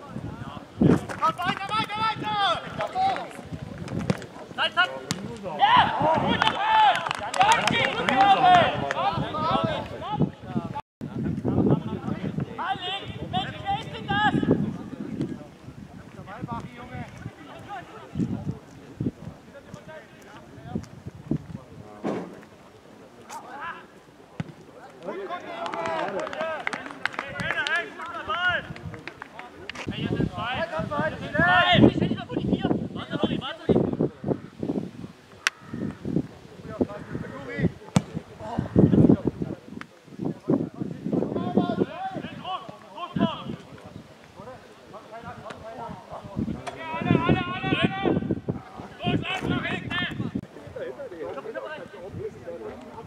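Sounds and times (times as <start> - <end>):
voices calling and shouting: 0.0 - 53.0
footballers shouting: 1.2 - 3.5, 4.4 - 10.4, 23.5 - 28.8, 29.4 - 33.7, 41.3 - 43.7, 45.2 - 50.4
short sharp thuds: 22.0 - 22.5.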